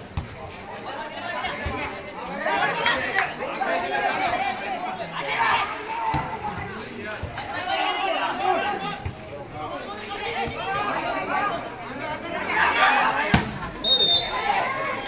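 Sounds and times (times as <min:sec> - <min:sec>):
people chattering and shouting: 0:00.0 - 0:15.0
referee's whistle blast: 0:13.8 - 0:14.4.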